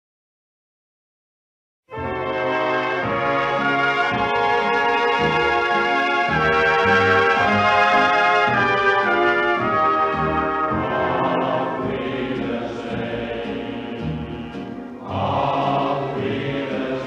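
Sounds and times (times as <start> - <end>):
brass music with held chords: 1.9 - 17.0.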